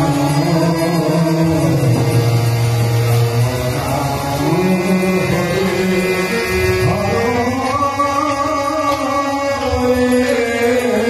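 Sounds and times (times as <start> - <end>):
harmonium sustained chord: 0.0 - 11.0.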